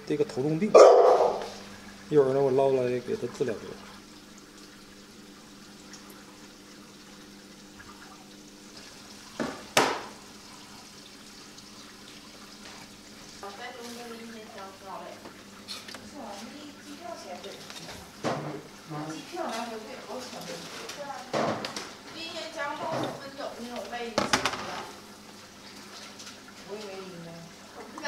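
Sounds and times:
pump humming: 0.0 - 28.0
water trickling: 0.0 - 28.0.

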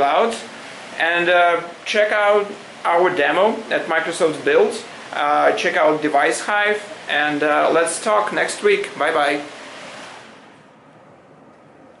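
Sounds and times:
desk fan whooshing hiss: 0.0 - 12.0.

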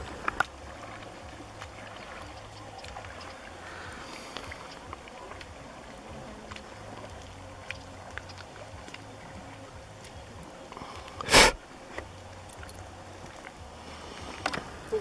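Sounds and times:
paddles splashing in water: 0.0 - 15.0.

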